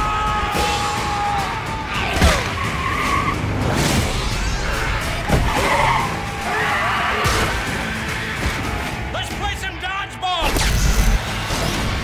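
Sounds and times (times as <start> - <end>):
trailer music: 0.0 - 12.0
car tyres squealing: 1.9 - 3.6, 4.6 - 9.0.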